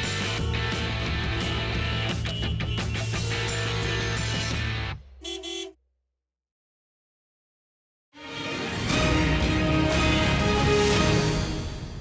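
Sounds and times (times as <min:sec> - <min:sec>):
music: 0:00.0 - 0:05.2, 0:08.2 - 0:12.0
short horn honk: 0:05.2 - 0:05.8.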